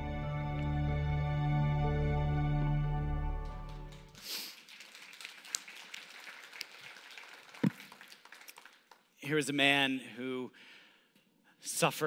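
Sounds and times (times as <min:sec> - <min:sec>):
scattered applause: 0:03.3 - 0:09.2.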